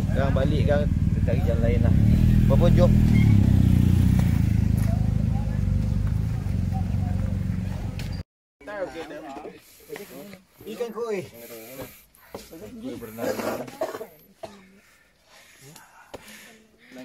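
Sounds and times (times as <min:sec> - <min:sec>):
motorcycle engine idling: 0:00.0 - 0:08.2.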